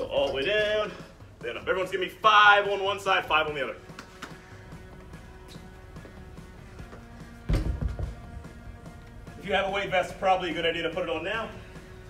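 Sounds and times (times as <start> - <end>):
background music: 0.0 - 12.0
dumbbell thumping on rubber floor: 7.4 - 8.3.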